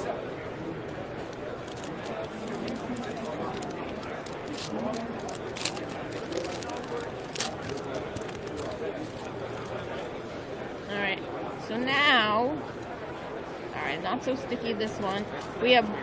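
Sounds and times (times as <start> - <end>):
crowd chatter: 0.0 - 16.0
foil wrapper crinkling: 1.2 - 10.0.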